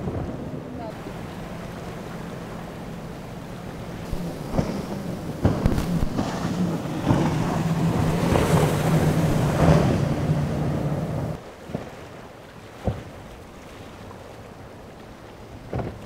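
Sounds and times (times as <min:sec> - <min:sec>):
spray and wind rushing: 0:00.0 - 0:11.9
boat engines droning: 0:00.0 - 0:16.0
water and wind noise: 0:00.0 - 0:16.0.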